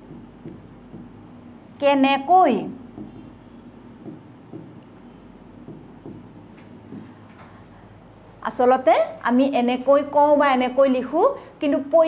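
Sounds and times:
pen scratching on board: 0.0s - 1.2s, 2.6s - 7.0s.

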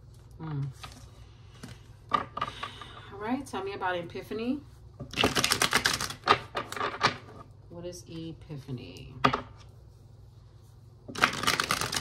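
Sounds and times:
cards being shuffled: 5.1s - 7.2s, 11.1s - 12.0s.

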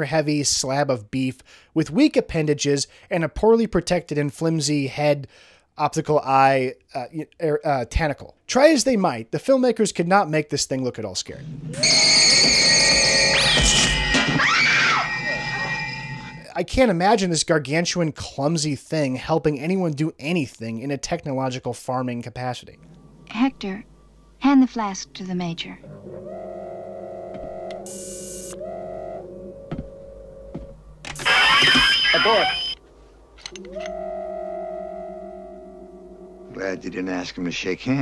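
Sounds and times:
high electronic tones: 11.7s - 14.4s, 22.4s - 32.8s, 33.4s - 38.0s
sharp rising electronic sweeps: 25.7s - 32.8s, 33.5s - 38.0s.

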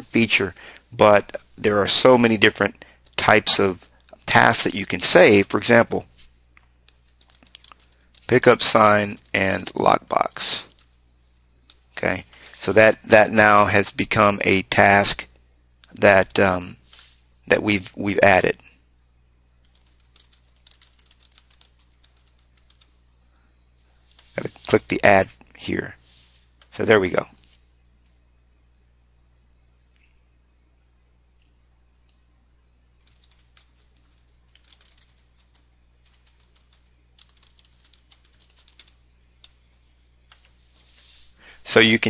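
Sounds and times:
computer keyboard typing: 6.9s - 9.6s, 19.6s - 23.0s, 33.0s - 39.6s.

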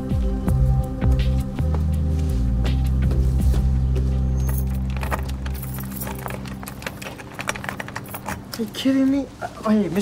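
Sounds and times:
keys jangling: 4.3s - 8.8s.

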